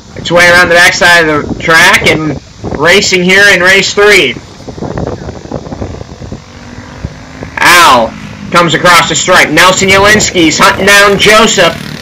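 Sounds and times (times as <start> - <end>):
distant kart engines droning: 3.5 - 12.0.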